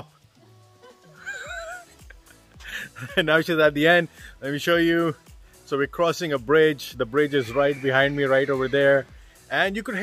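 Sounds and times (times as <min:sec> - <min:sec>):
faint background music: 0:00.0 - 0:10.0
horse whinnying: 0:07.2 - 0:09.0.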